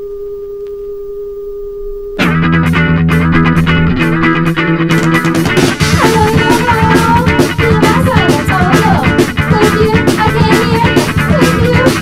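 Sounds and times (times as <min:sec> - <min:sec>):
steady electronic tone: 0:00.0 - 0:10.3.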